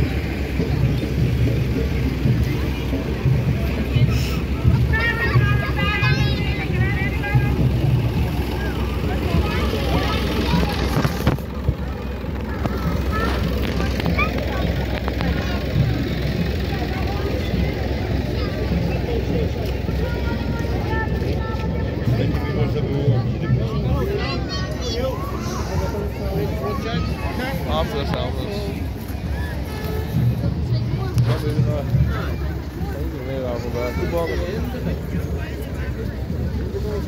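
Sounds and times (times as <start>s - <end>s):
crowd chatter: 0.0s - 37.0s
vehicle engines running: 0.0s - 37.0s.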